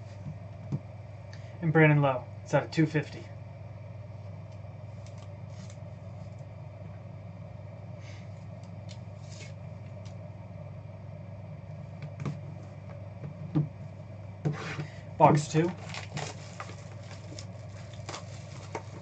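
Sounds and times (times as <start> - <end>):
low room hum: 0.0 - 19.0.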